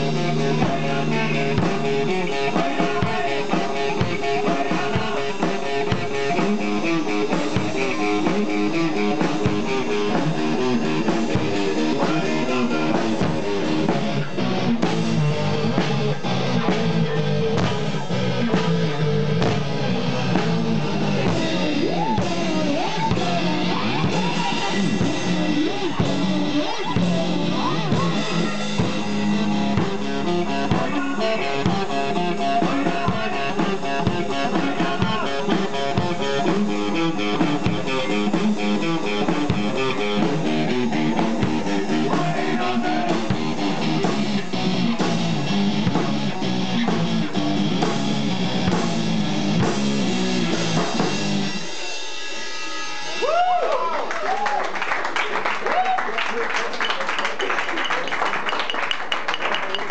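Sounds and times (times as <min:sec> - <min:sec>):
drum kit steady beat: 0:00.0 - 0:53.7, 0:57.2 - 0:59.9
live rock guitar: 0:00.0 - 0:53.7.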